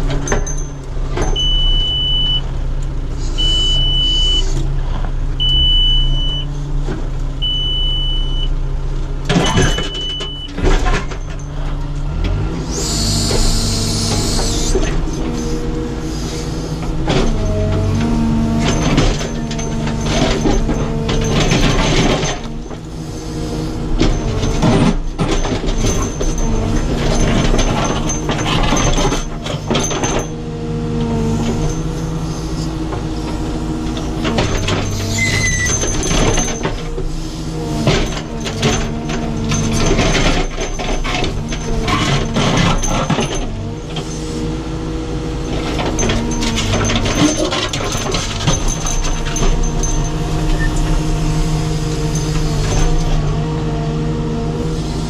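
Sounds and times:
diesel engine running: 0.0 - 55.0
high electronic beep: 3.4 - 4.5.

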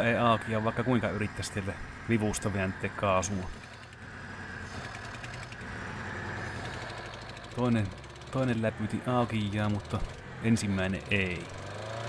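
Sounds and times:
engine running poorly: 0.0 - 12.0.

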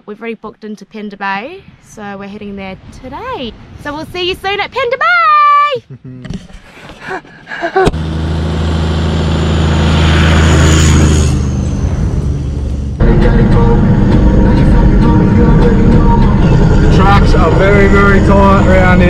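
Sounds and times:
engine and track rumble in cabin: 7.9 - 19.0
vehicle driving past: 8.0 - 19.0.

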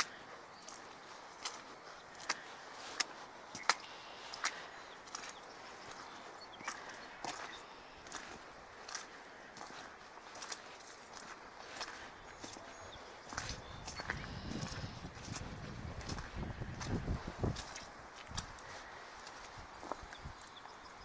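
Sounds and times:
footsteps on muddy path: 0.0 - 21.0.

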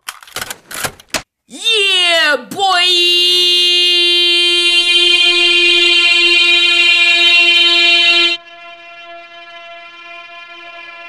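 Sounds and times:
man shouting a long note: 1.5 - 8.4.

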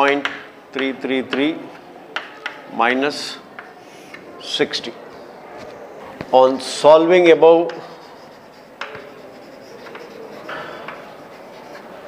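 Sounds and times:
chalk tapping on blackboard: 0.0 - 1.5, 7.1 - 12.0
chalk scratching on blackboard: 6.1 - 12.0.

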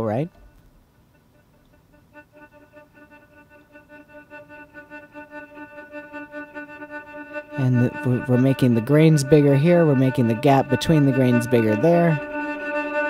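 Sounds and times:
granular synthesizer stuttering tone: 1.3 - 13.0.

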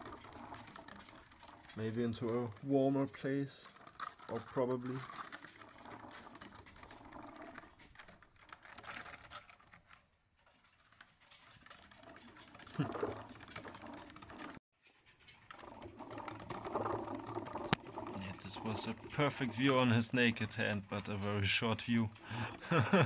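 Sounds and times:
small animals scrabbling in cage: 0.0 - 23.0.

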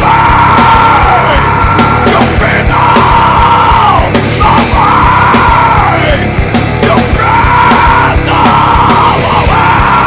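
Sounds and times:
distorted guitar: 0.0 - 10.0
fast driving drums: 0.0 - 10.0
heavy metal song: 0.0 - 10.0
yelled vocals: 0.0 - 10.0.

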